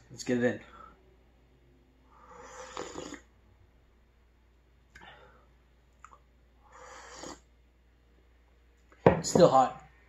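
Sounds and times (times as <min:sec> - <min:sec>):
slurping sip of tea: 0:02.2 - 0:03.3, 0:06.7 - 0:07.5.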